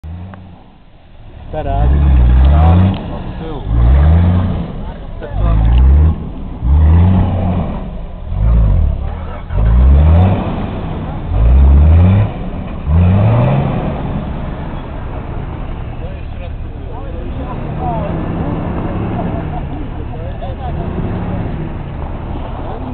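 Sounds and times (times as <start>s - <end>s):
engine revving: 1.3s - 22.9s.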